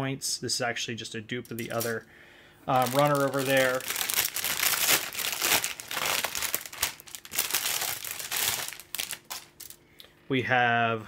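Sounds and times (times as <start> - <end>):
plastic bags crinkling: 1.5 - 2.0, 2.7 - 9.8.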